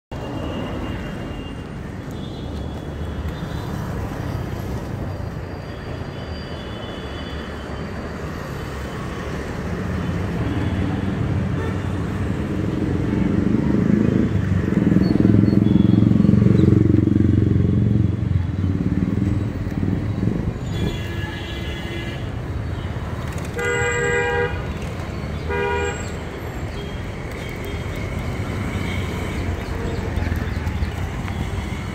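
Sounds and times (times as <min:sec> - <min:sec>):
road traffic rumble: 0:00.1 - 0:31.9
distant car horns: 0:23.5 - 0:24.6, 0:25.4 - 0:26.2
car horn blasts: 0:23.6 - 0:24.6, 0:25.5 - 0:26.1.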